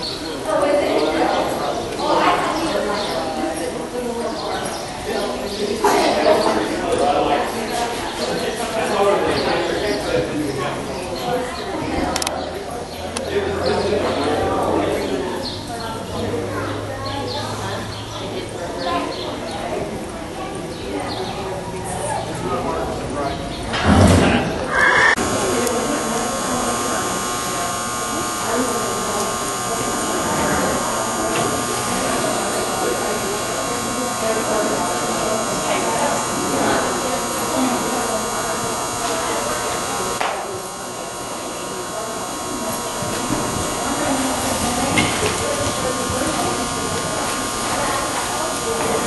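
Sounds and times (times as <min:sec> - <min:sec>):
steady electrical buzz: 0:00.0 - 0:04.1, 0:25.1 - 0:49.0
indistinct voices in echoing hall: 0:00.0 - 0:49.0.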